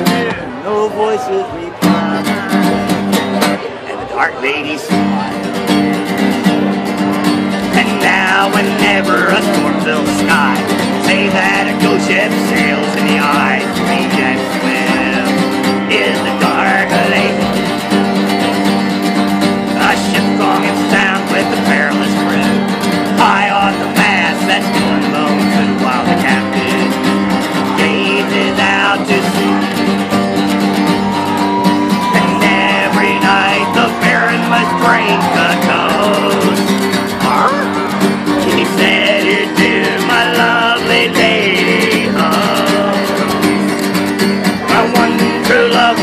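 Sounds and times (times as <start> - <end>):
acoustic guitar strumming: 0.0 - 46.0.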